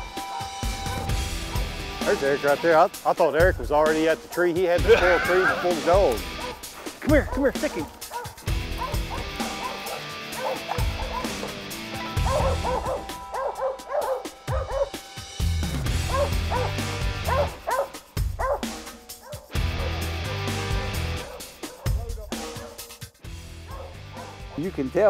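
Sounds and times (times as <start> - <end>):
dogs barking: 0.0 - 2.7, 4.2 - 15.1, 15.9 - 24.8
background music with bass: 0.0 - 25.0.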